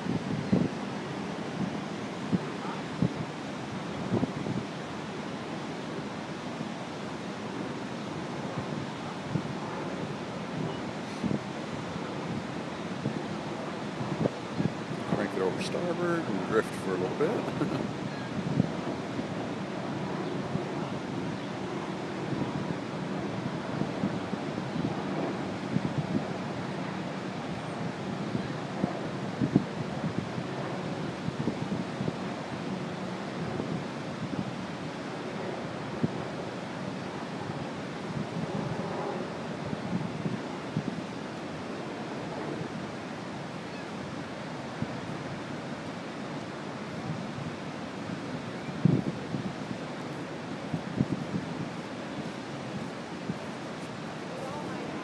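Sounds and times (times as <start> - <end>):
river water rushing: 0.0 - 55.0
wind buffeting microphone: 0.0 - 55.0.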